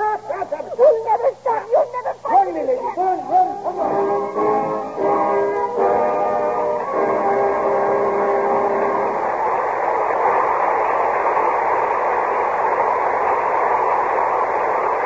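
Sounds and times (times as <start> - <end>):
audience applauding: 0.0 - 15.0
orchestra holding closing chord: 3.2 - 9.3.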